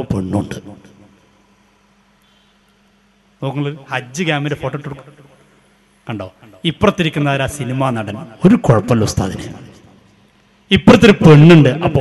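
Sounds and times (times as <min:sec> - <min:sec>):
electrical hum with hiss: 0:00.0 - 0:12.0
man speaking: 0:06.1 - 0:09.6, 0:10.7 - 0:12.0.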